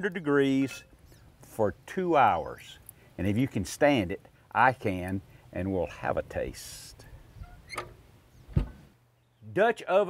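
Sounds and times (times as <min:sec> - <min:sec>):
sharp thump: 0:07.8 - 0:08.9.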